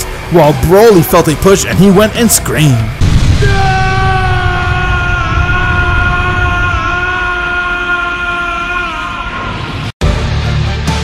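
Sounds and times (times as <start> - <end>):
deep rumble: 2.8 - 7.9
man screaming: 3.2 - 9.7.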